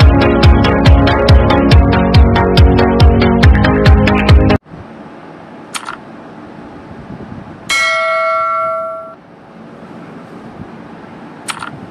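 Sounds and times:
notification bell ding: 0:07.7 - 0:09.2.

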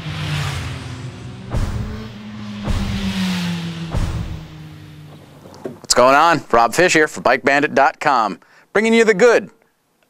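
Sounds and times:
low engine-like drone: 0:00.0 - 0:05.9
sharp hits: 0:00.0 - 0:06.6.

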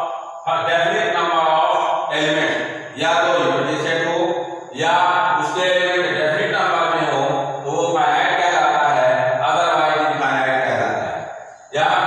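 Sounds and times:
man lecturing: 0:00.0 - 0:12.0.

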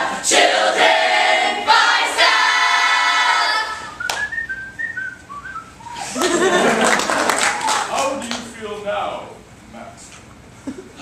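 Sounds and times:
group singing a cheer: 0:00.0 - 0:04.0
person whistling: 0:03.8 - 0:06.2.

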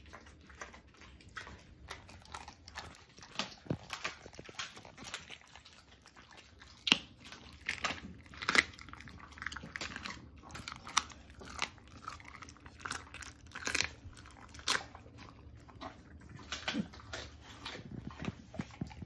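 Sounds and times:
dog chewing bone: 0:00.0 - 0:19.0.

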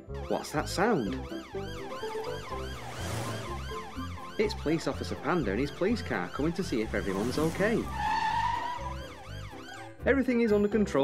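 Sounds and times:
police car siren wailing: 0:00.0 - 0:10.0.

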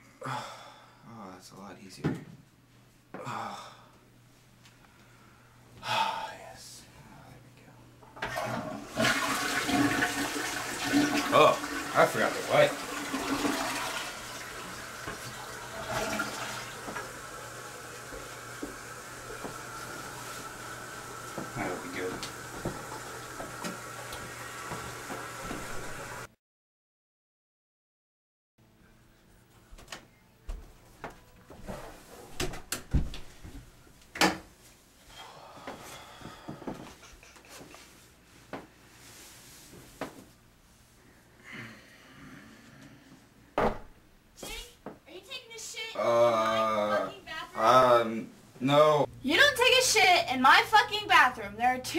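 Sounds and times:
water running: 0:08.2 - 0:26.3
clothing rustle: 0:36.8 - 0:41.0
thump sitting on toilet: 0:43.6 - 0:43.9.

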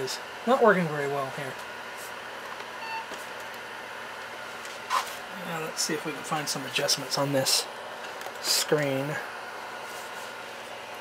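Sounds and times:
steady fan-like hiss: 0:00.0 - 0:11.0.

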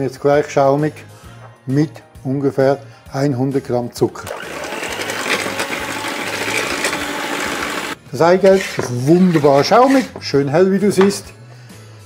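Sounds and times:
electric hand mixer whisking: 0:04.2 - 0:10.1.

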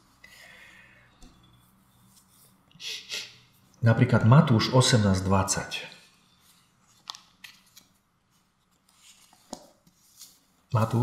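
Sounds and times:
pages rustling: 0:06.4 - 0:11.0.

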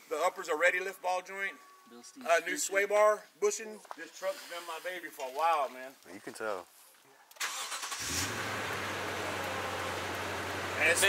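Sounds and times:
engine cranking and idling: 0:07.4 - 0:11.0.

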